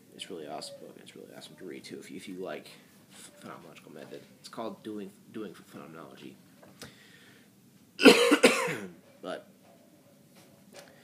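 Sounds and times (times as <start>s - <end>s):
man coughing: 8.0s - 8.9s.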